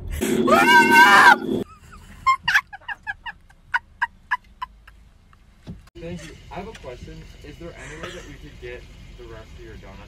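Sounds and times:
girl screaming: 0.4s - 1.6s
high-pitched laughter: 1.6s - 5.0s.

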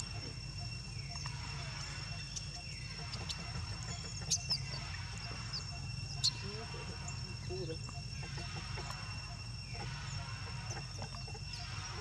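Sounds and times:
high-pitched insect drone: 0.0s - 12.0s.

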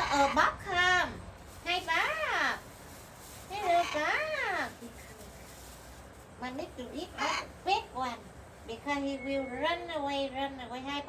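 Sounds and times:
parrot making speech-like calls: 7.1s - 7.6s.

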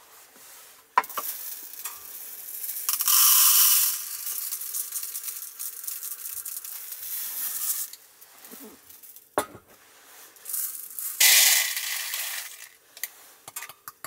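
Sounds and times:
rice pouring into plastic cup: 1.0s - 9.2s, 10.3s - 13.2s.

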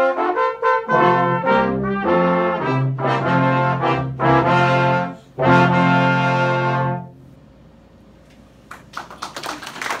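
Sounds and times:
audience applauding: 8.7s - 10.0s.

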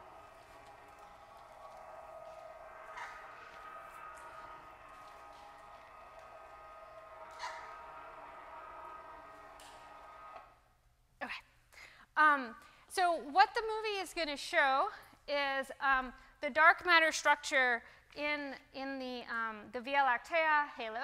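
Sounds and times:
electric motor humming: 0.0s - 10.6s.

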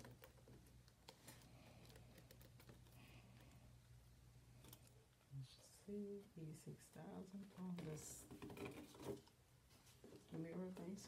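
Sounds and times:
low room hum: 0.0s - 11.0s
person speaking: 5.2s - 9.0s, 10.1s - 11.0s.

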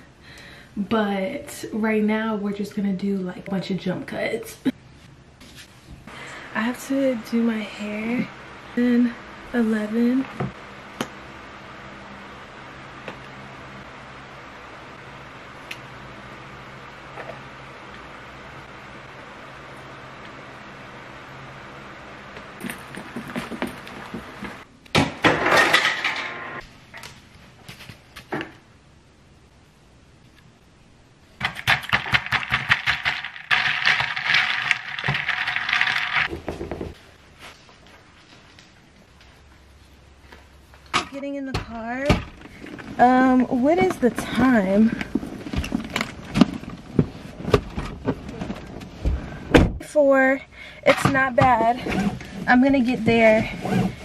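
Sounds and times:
containers clattering and rustling: 31.4s - 37.0s.

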